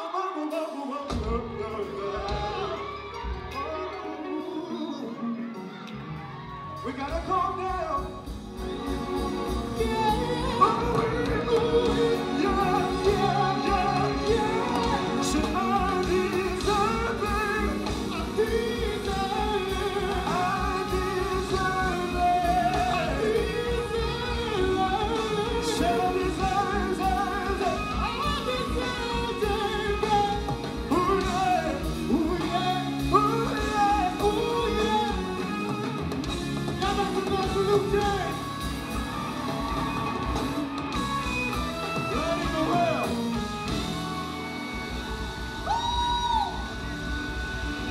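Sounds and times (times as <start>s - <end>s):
r and b band playing: 0.0s - 47.9s.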